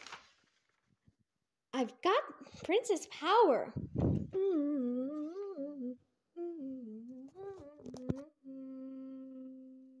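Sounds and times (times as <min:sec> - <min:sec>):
person humming: 0:04.3 - 0:10.0.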